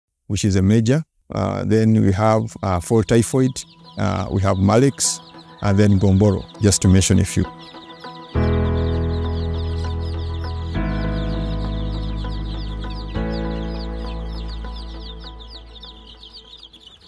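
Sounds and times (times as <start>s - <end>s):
chicks peeping: 1.3s - 17.0s
sustained music chord: 2.4s - 16.8s.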